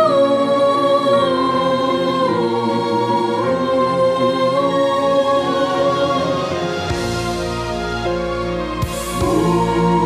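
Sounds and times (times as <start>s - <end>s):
mixed choir singing: 0.0s - 10.0s.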